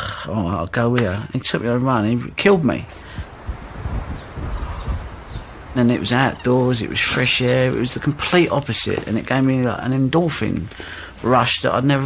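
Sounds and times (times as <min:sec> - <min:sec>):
leaves rustling: 0:00.7 - 0:12.0
wind gusts on microphone: 0:02.0 - 0:09.6.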